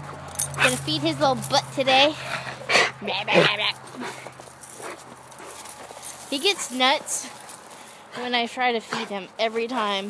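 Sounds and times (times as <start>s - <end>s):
dog scuffling and rustling: 3.4s - 10.0s.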